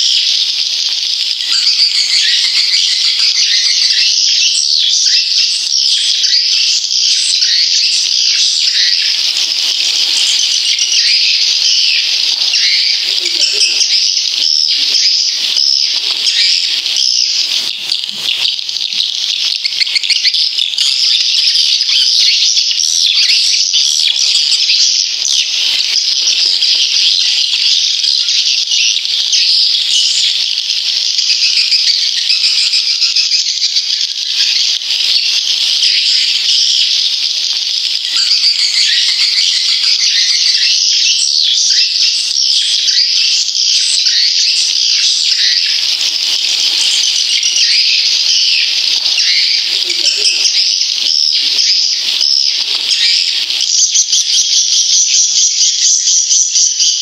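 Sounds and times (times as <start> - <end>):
swiftlets twittering: 5.6 - 18.6, 38.0 - 55.4.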